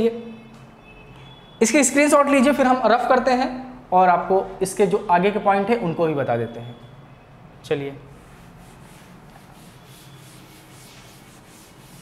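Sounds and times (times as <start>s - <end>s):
cloth duster rubbing chalkboard: 8.1s - 12.0s.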